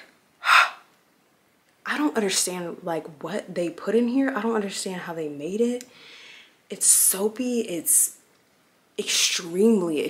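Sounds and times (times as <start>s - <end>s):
woman gasping: 0.4s - 0.9s.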